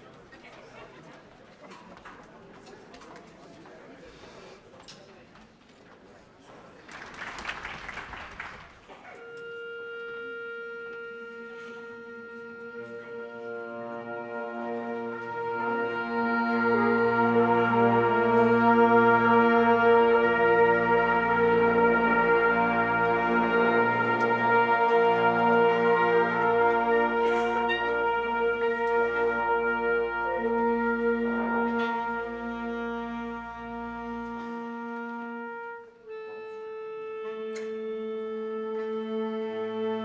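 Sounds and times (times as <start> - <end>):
concert band sustained chords: 9.2 - 40.0.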